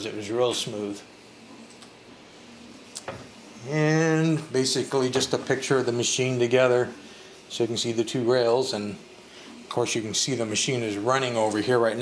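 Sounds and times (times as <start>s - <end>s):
printer running hum and hiss: 0.0s - 12.0s.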